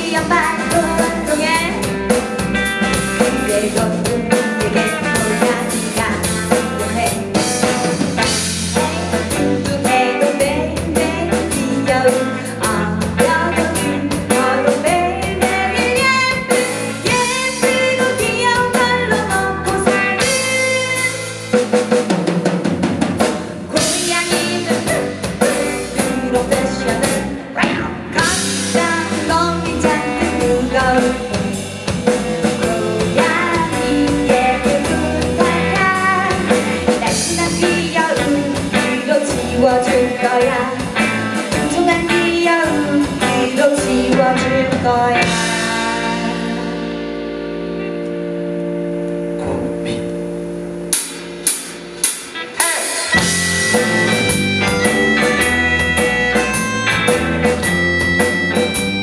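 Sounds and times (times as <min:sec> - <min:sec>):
woman singing lead vocal: 0:00.0 - 0:02.2, 0:02.9 - 0:21.4, 0:23.7 - 0:31.6, 0:32.2 - 0:46.8, 0:52.4 - 0:53.3
live rock band playing: 0:00.0 - 0:59.0.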